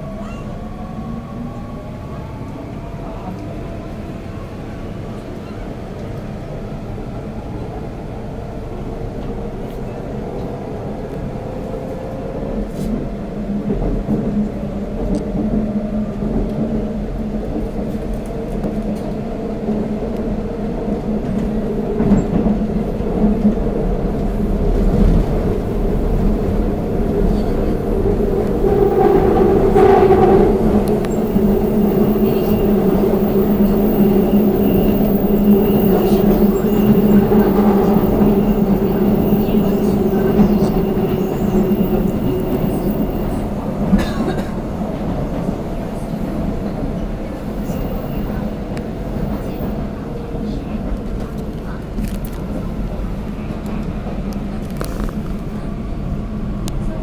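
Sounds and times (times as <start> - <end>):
subway train rumbling: 0.0 - 57.0.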